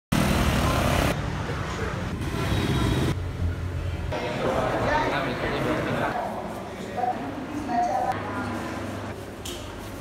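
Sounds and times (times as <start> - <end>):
street traffic: 0.1 - 10.0
motor scooters passing: 0.2 - 3.5.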